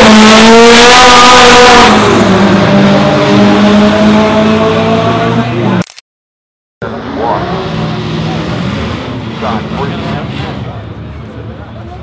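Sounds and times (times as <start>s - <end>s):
people's voices: 8.2s - 12.0s.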